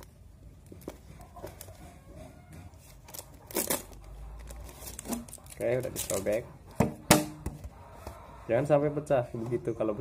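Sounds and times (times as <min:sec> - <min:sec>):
plastic label tearing: 0:02.9 - 0:06.3
plastic bottle crinkling: 0:02.9 - 0:06.4.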